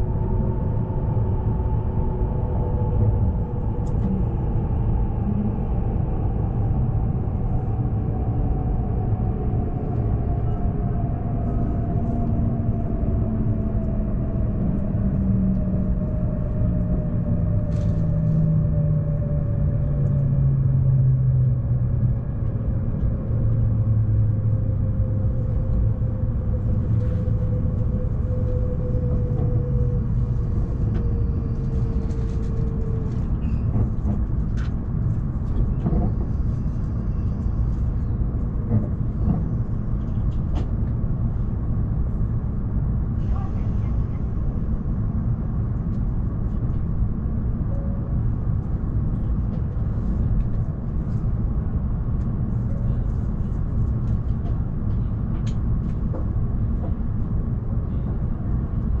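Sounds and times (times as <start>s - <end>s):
train rumble and hum: 0.0s - 59.0s.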